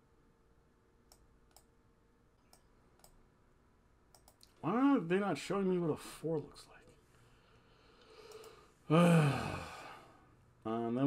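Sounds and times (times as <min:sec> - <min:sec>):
faint short clicks: 0:08.0 - 0:08.6.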